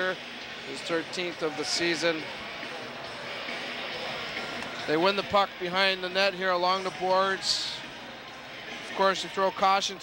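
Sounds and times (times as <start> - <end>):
crowd murmur in arena: 0.0 - 10.0.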